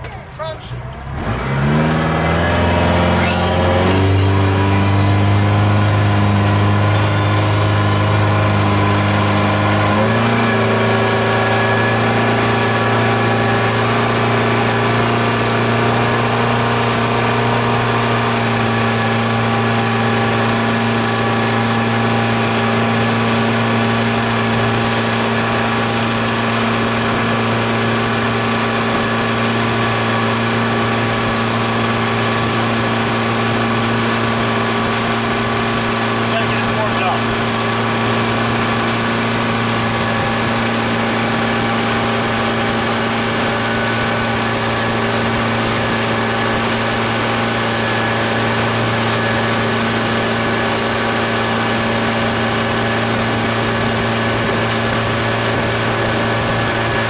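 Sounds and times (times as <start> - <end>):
motorboat engine under load: 0.0 - 57.0.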